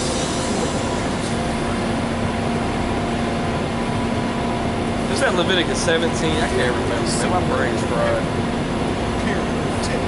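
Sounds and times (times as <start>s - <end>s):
buses idling: 0.0s - 10.0s
street traffic noise: 0.0s - 10.0s.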